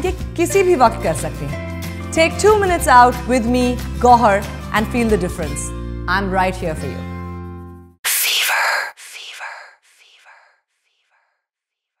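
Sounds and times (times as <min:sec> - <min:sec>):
whispered voice echoing: 0:08.1 - 0:11.2.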